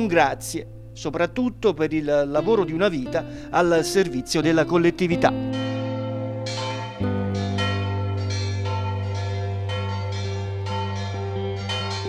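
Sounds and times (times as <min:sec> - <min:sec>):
church bells ringing: 0:02.4 - 0:12.0.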